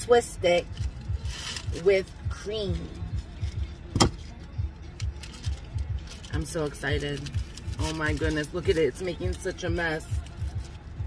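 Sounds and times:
thumping rumble inside car: 2.4 - 4.3.

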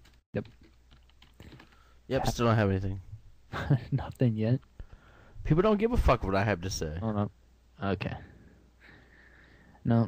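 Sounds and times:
computer keyboard keystrokes: 0.0 - 1.9.

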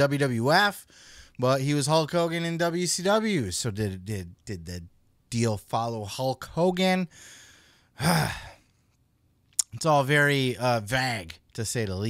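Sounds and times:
man sighing: 7.1 - 8.6.

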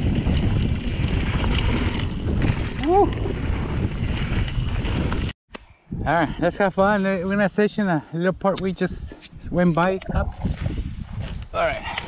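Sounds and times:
bike clicks and rattles: 0.0 - 5.3
wind buffeting microphone: 0.0 - 7.6, 8.3 - 12.0.

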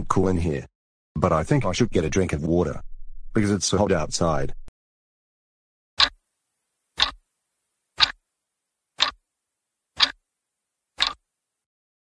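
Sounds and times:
clock ticking: 7.0 - 7.2, 9.0 - 9.2, 11.0 - 11.2.

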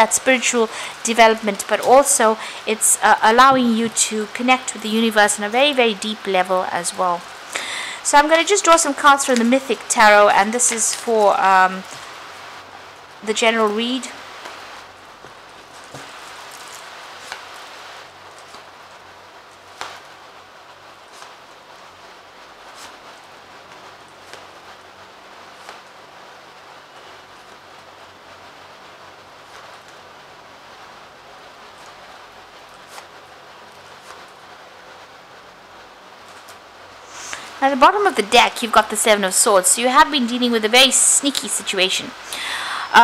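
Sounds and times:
background hiss: 0.0 - 43.0.

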